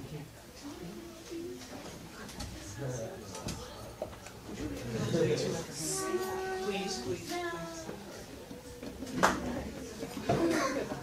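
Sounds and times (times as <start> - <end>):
murmur of students talking: 0.0 - 11.0.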